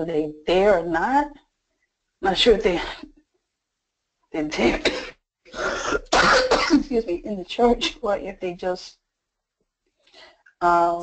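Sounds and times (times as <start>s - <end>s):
person coughing: 4.7s - 6.9s.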